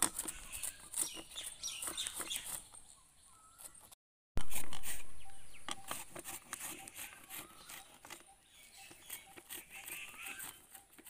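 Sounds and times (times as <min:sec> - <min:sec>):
faint bird chirps: 0:00.2 - 0:03.9, 0:04.7 - 0:11.0.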